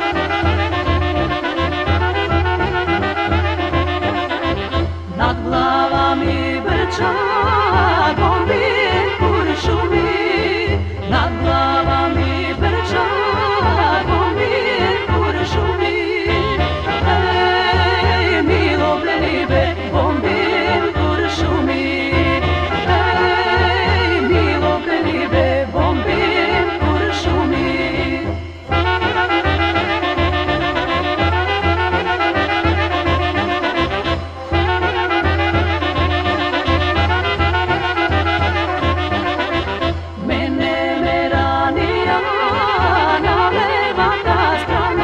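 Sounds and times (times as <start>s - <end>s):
band backing with pulsing bass: 0.0s - 6.8s, 7.4s - 40.4s
woman singing folk song: 5.1s - 29.2s, 40.2s - 45.0s.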